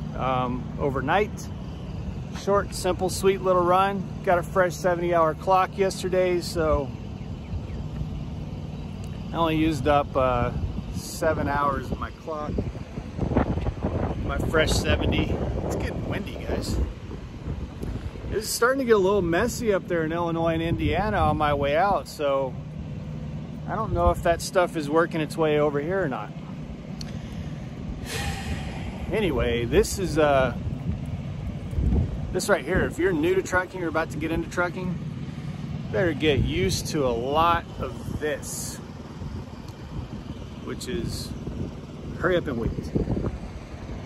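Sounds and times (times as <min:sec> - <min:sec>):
wind buffeting microphone: 0:00.0 - 0:22.8, 0:25.9 - 0:44.0
diesel truck engine rumbling: 0:00.0 - 0:44.0
sharp breath through nose: 0:27.0 - 0:29.1.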